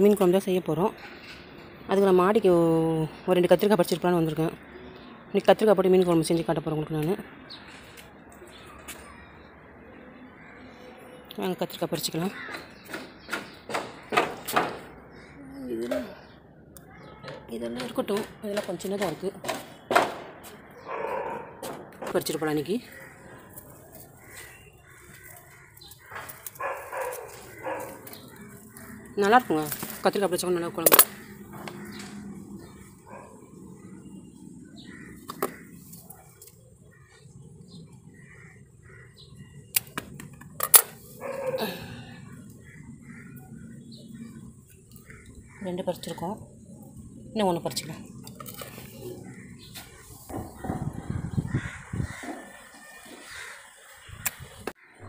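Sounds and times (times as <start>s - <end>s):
crow-like caws: 12.3s - 12.8s, 22.8s - 29.9s, 31.1s - 32.8s, 34.7s - 35.9s, 38.1s - 39.5s, 41.4s - 43.7s, 49.1s - 53.9s, 54.8s - 55.0s
dog barking: 20.8s - 21.7s, 26.6s - 28.0s, 41.2s - 41.6s.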